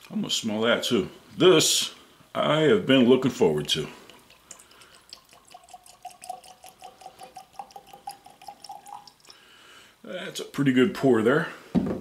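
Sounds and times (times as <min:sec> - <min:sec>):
liquid glugging into a glass: 0:04.0 - 0:09.4.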